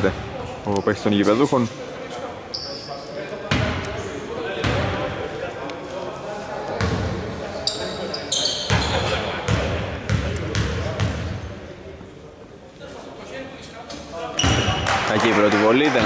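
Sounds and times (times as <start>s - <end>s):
sneaker squeaks on floor: 2.5s - 4.1s, 7.6s - 9.3s, 14.4s - 15.0s.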